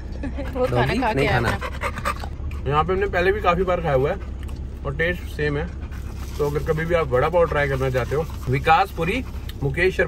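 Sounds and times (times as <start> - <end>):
steady low hum: 0.0 - 10.0
dog panting: 0.3 - 10.0.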